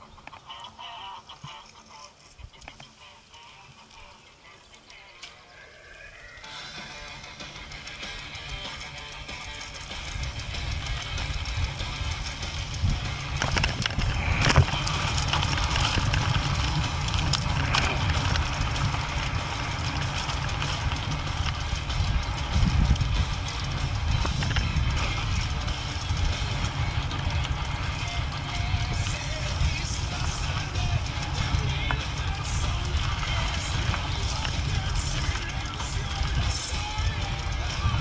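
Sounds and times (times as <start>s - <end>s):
bike tyres and frame rattling: 0.0s - 38.0s
wind on microphone: 10.0s - 38.0s.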